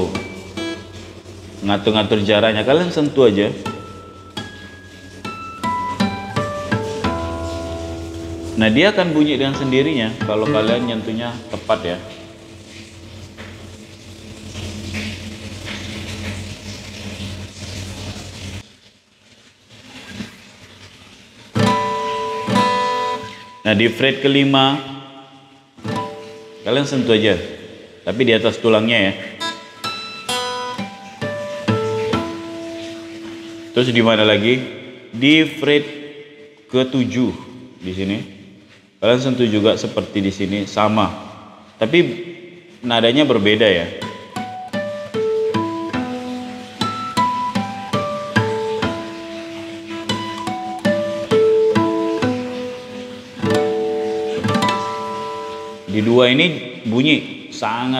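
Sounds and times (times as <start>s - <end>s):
acoustic guitar harmonics: 0.0s - 18.5s, 21.5s - 38.1s, 41.0s - 57.8s.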